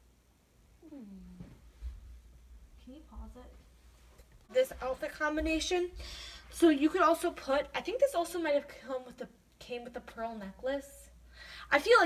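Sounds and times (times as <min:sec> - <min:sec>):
vocal sound gliding down: 0:00.8 - 0:01.6.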